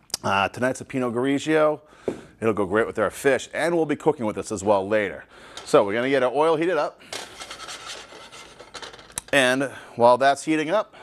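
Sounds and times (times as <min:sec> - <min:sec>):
frying pan scraping burner grate: 0:07.2 - 0:09.0.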